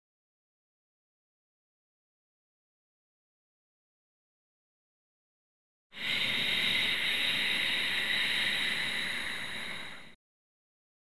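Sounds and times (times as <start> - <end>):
long breath exhalation: 6.0 - 10.2.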